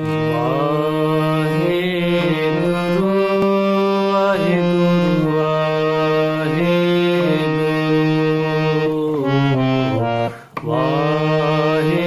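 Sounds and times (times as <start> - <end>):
harmonium sustained reed notes: 0.0 - 12.0.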